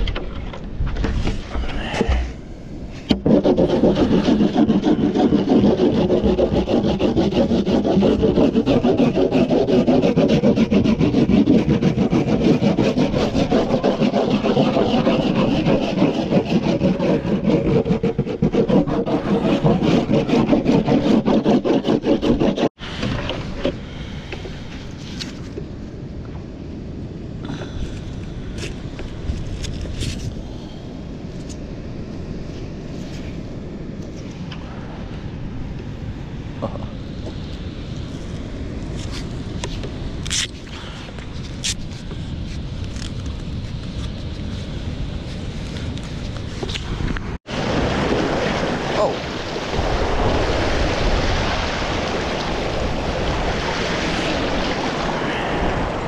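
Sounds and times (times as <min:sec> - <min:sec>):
wax scraping on surfboard: 0:01.0 - 0:23.8.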